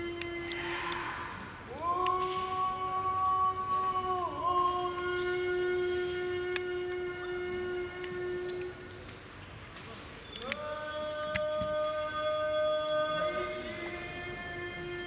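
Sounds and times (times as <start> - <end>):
person singing long drawn-out notes: 0.0 - 9.0, 10.4 - 15.0.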